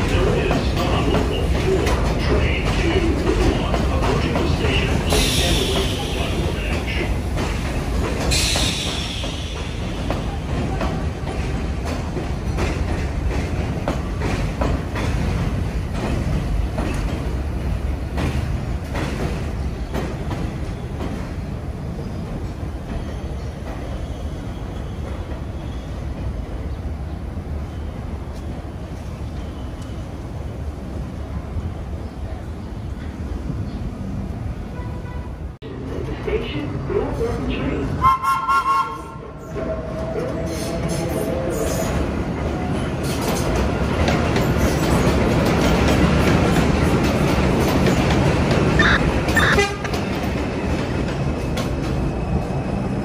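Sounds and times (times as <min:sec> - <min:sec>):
subway train wheels clattering: 0:00.0 - 0:53.0.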